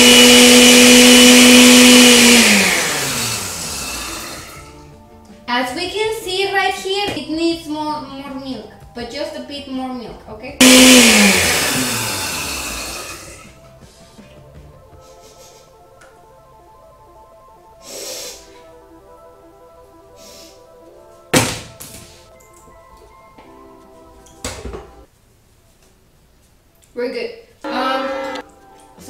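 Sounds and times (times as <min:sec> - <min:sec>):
blender motor winding down: 0:00.0 - 0:04.7, 0:10.6 - 0:13.6
soft background music: 0:04.4 - 0:10.6, 0:13.4 - 0:26.1, 0:27.1 - 0:29.0.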